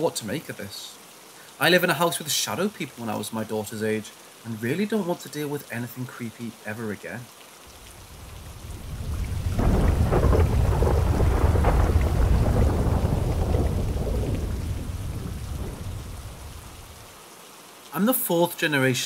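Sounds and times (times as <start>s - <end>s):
steady rain: 0.0s - 19.0s
thunder rolling: 8.0s - 17.0s.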